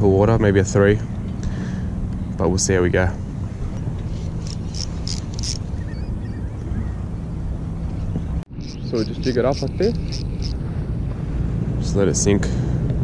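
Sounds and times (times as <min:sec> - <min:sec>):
boat engine humming: 0:00.8 - 0:11.8.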